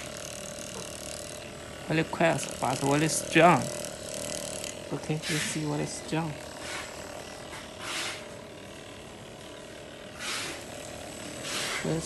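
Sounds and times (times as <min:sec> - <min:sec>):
massage gun motor hum: 0:00.0 - 0:12.0.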